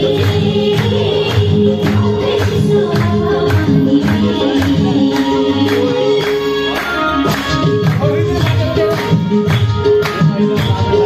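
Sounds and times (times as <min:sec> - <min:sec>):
group singing folk dance song: 0:00.0 - 0:09.2
rhythmic hand clapping: 0:00.0 - 0:11.0.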